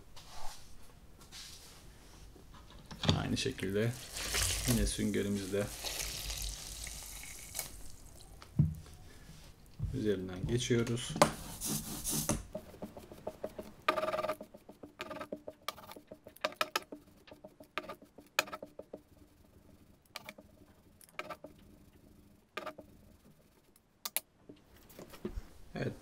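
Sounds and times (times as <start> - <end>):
ink roller rolling rasp: 11.3 - 23.7.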